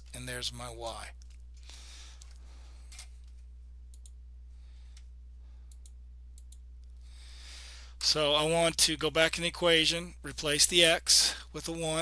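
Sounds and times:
steady low hum: 0.0 - 12.0
computer mouse clicks: 3.9 - 4.2, 5.7 - 6.6.

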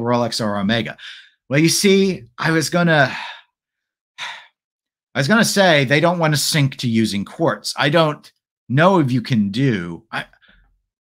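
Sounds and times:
short breath: 3.1 - 3.6, 4.2 - 4.6
man sighing: 4.2 - 4.6.

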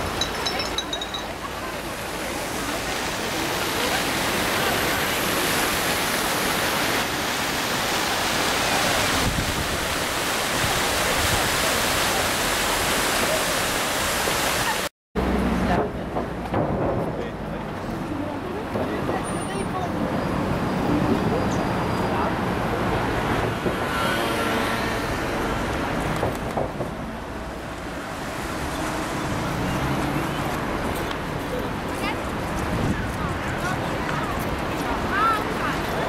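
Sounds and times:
voices outdoors: 0.0 - 13.9, 14.5 - 36.0
fountain water splashing: 0.0 - 23.9, 24.8 - 36.0.

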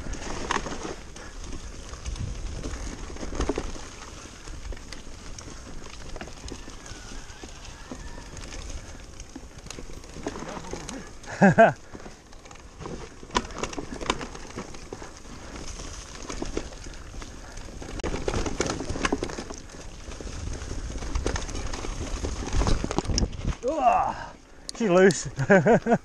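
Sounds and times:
bike clicks and rattles: 0.0 - 26.0
bike tyres rolling over leaves: 0.0 - 26.0
wind rumble on microphone: 1.5 - 3.5, 20.0 - 23.7.

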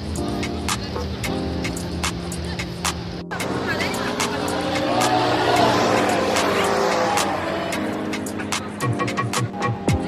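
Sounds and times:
fairground ride rushing noise: 0.0 - 10.0
music playing: 0.0 - 10.0.

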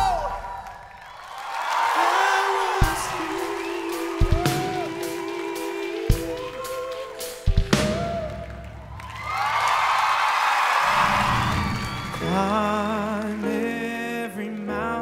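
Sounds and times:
audience cheering and applause: 0.0 - 14.0.

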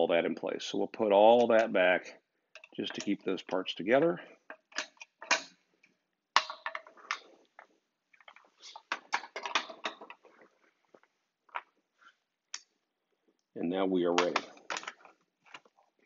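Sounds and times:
metal hardware clicking and knocking: 2.6 - 3.3, 4.5 - 5.6, 6.4 - 7.2, 8.8 - 10.2, 14.2 - 15.1.

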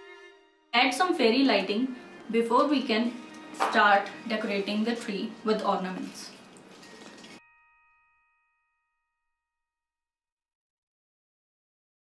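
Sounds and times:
bell-like ding: 7.4 - 9.4.

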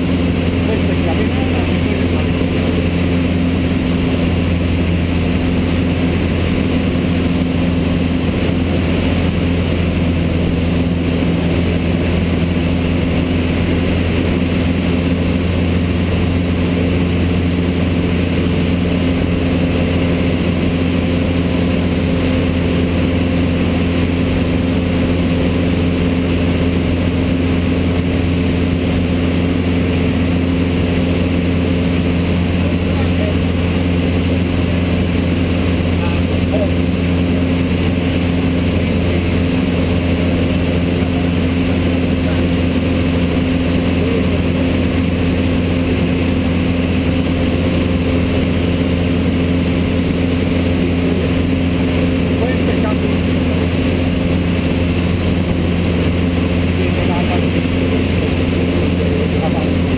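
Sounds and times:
light aircraft engine droning: 0.0 - 59.9.

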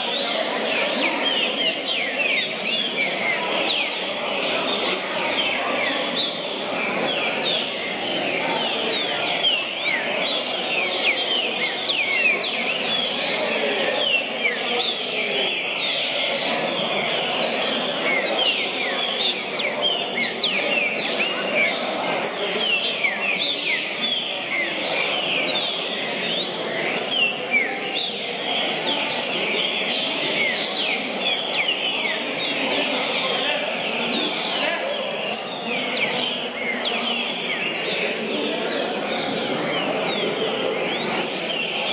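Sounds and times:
caged birds singing: 0.0 - 41.9
murmur of crowd voices: 0.0 - 41.9.

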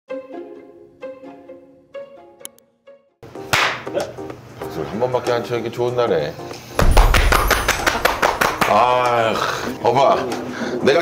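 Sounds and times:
sharp hand clap: 3.5 - 4.0, 6.8 - 9.2.

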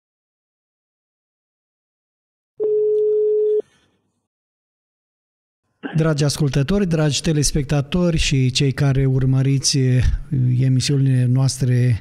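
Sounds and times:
telephone line beep: 2.6 - 3.6.

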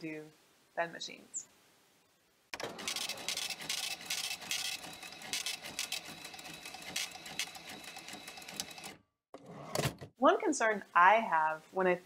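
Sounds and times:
rapid mechanical clicking and clatter: 2.6 - 9.0.

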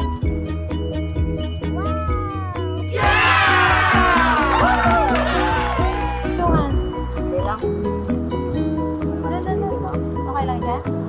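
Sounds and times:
plucked background music with bass: 0.0 - 11.0.

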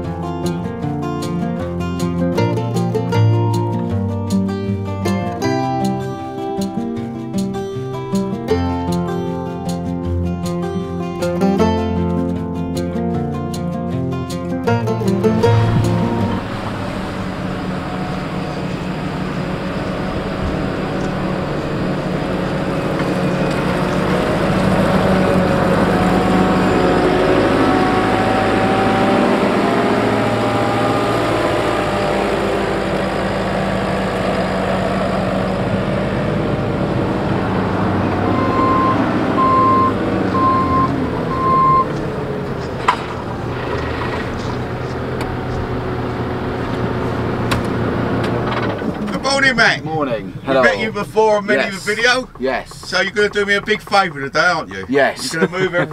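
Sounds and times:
diesel engine running: 0.0 - 55.9
high warning beeper: 38.4 - 41.9.

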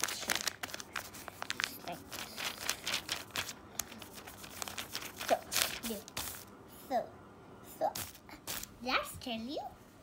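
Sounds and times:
hand rustling notebook pages: 0.0 - 6.5.

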